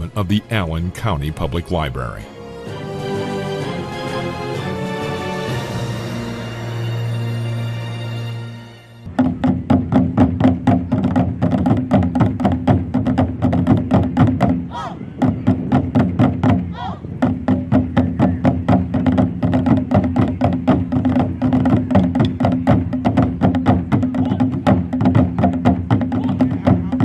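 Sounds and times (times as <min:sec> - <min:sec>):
rapid drum strikes: 0:15.4 - 0:27.0.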